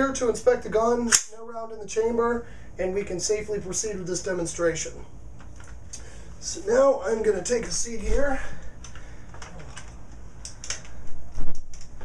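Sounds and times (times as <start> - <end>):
rifle clicks and rattles: 8.8 - 12.0.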